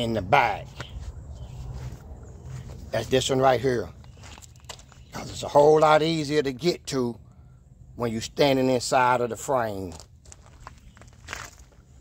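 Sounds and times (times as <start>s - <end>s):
footsteps on gravelly dirt: 0.0s - 5.8s, 9.6s - 12.0s.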